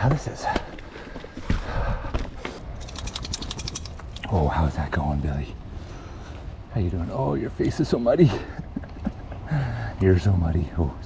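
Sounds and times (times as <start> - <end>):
rapid clicks: 2.8 - 4.2.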